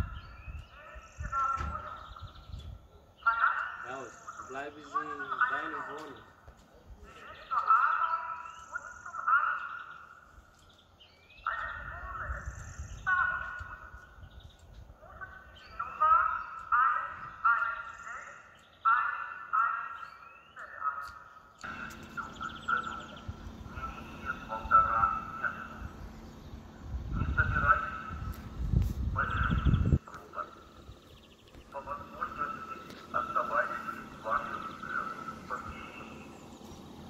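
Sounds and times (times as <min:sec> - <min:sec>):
loudspeaker announcement voice: 0:00.0 - 0:10.3, 0:11.4 - 0:14.2, 0:14.9 - 0:37.0
low steady hum: 0:21.6 - 0:37.0.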